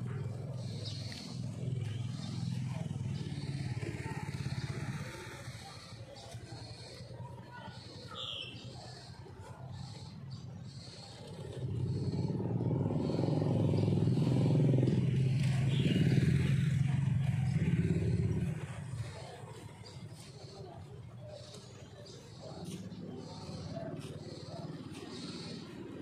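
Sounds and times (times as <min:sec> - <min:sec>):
vehicle engine passing by: 0:00.0 - 0:07.0, 0:09.9 - 0:26.0.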